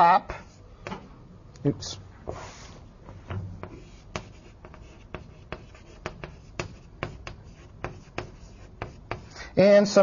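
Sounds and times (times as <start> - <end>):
writing taps on a board: 3.3 - 9.3.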